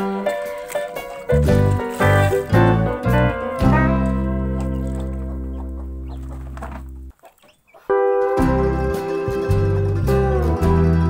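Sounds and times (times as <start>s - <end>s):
held music chord: 0.0s - 6.6s, 7.9s - 11.0s
chickens clucking: 0.1s - 2.9s, 3.6s - 8.1s.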